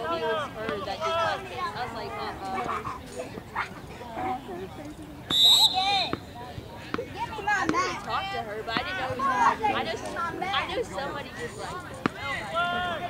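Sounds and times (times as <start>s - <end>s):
players and spectators shouting: 0.0s - 4.5s, 5.2s - 13.0s
shrill whistle blast: 5.3s - 6.1s.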